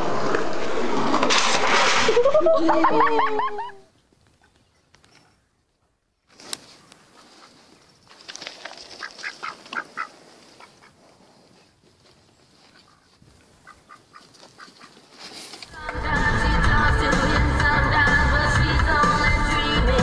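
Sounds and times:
duck quacking: 9.0s - 11.0s, 12.8s - 15.0s.

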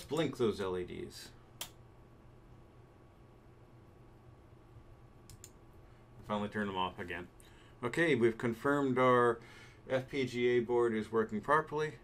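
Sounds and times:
faint room hum: 0.0s - 12.0s
computer mouse clicks: 5.2s - 5.6s.

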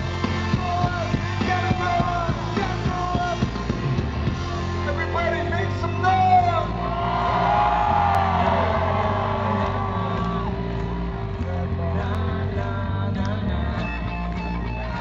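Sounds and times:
live rock band playing: 0.0s - 15.0s.

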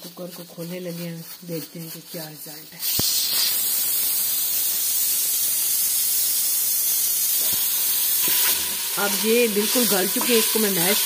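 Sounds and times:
steam hissing from pressure cooker: 0.0s - 11.0s.

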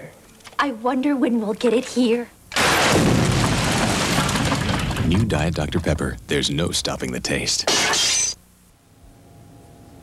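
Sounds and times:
vending machine crashing through wall: 2.5s - 5.2s
debris breaking: 2.5s - 5.9s.

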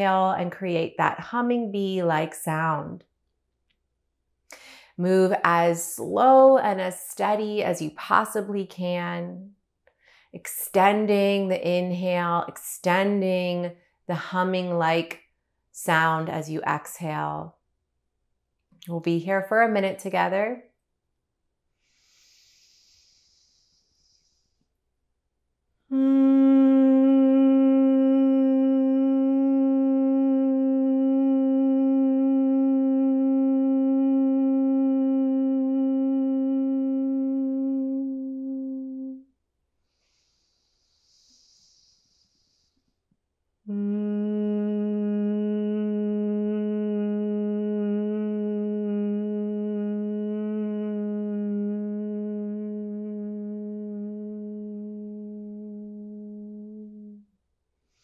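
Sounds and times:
soft nasal inhale: 21.8s - 24.8s, 39.8s - 43.1s
woman humming: 25.9s - 39.3s, 43.7s - 57.3s.

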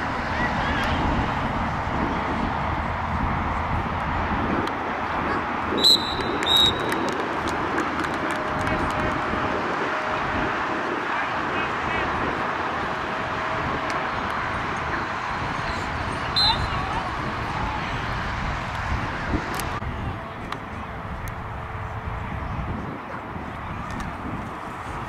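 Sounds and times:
voices from sidelines: 4.8s - 25.0s
referee's whistle blasts: 5.8s - 7.0s, 16.3s - 16.8s.

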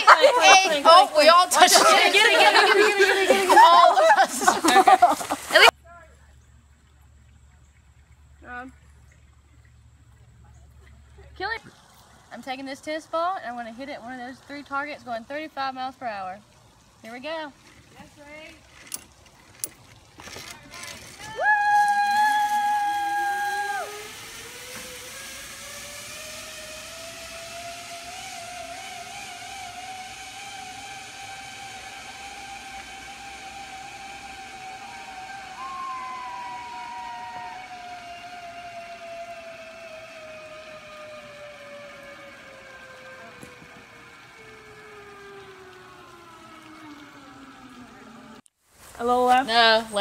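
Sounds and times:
zipline pulley whining on cable: 0.0s - 5.7s, 17.0s - 50.0s.

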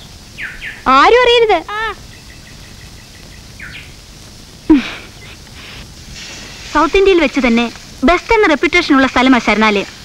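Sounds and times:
downward-sweeping bird call: 0.4s - 0.9s, 1.7s - 4.0s
faint high bird chirps: 0.4s - 1.1s, 1.7s - 4.0s.

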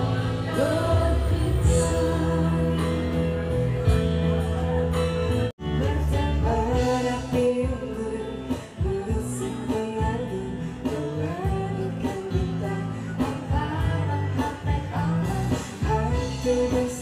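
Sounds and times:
woman singing: 0.0s - 3.6s, 5.6s - 17.0s
man singing: 0.0s - 5.0s, 5.7s - 17.0s
bass guitar: 0.0s - 17.0s
strummed acoustic guitars: 0.0s - 17.0s.

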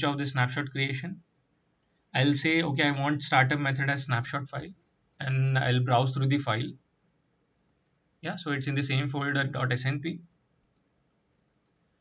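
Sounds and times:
faint mouse clicks: 1.8s - 2.1s, 10.6s - 11.8s.

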